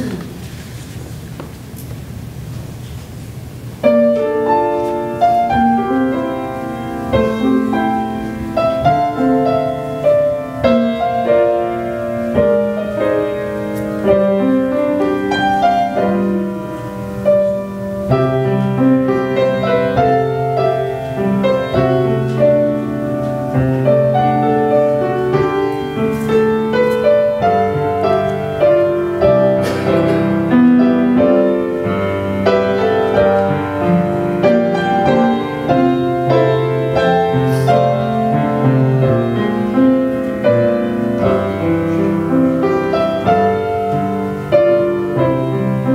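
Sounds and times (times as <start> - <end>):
grand piano playing chords: 0.0 - 45.9.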